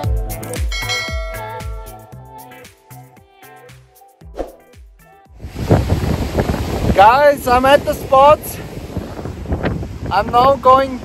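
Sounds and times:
wind gusting on microphone: 5.4 - 11.0.

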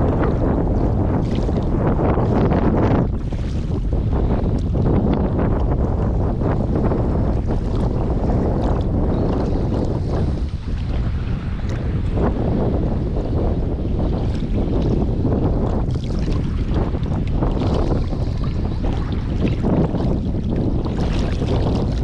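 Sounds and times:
small waves lapping and splashing: 0.0 - 12.2, 12.9 - 22.0
wind buffeting microphone: 0.0 - 22.0.

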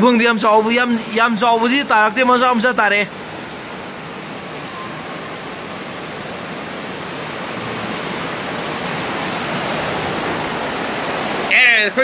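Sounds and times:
heavy rain with wind: 0.0 - 12.0.

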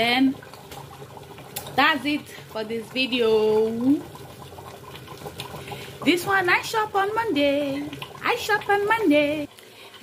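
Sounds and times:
soup simmering and bubbling: 0.0 - 10.0.

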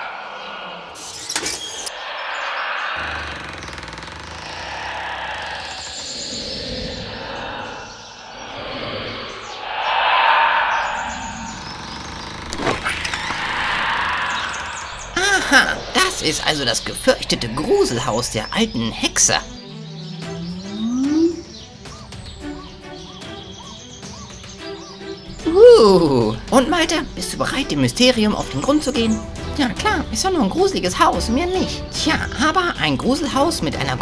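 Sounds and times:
gusting wind: 0.0 - 20.8.

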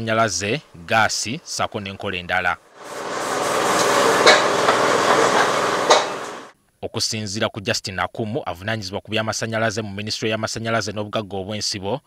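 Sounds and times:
fire crackling in a stove: 2.7 - 6.5.

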